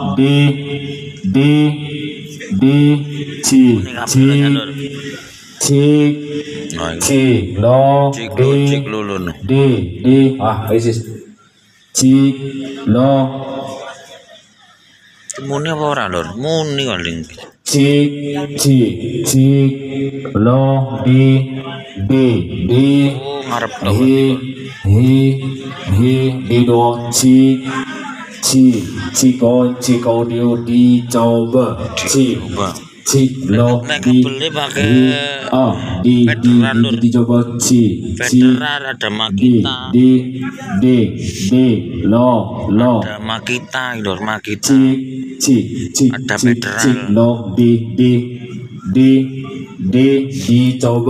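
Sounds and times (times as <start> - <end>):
man chanting syllables over loudspeaker: 0.0 - 51.0.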